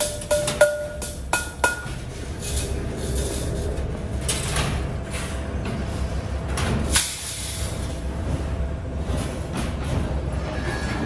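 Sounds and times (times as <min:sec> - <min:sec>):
low workshop rumble: 0:00.0 - 0:11.0.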